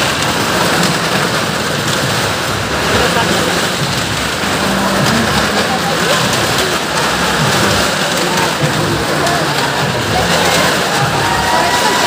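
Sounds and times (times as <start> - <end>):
car engines running hard: 0.0 - 12.0
tyres rumbling on wooden planks: 0.0 - 12.0.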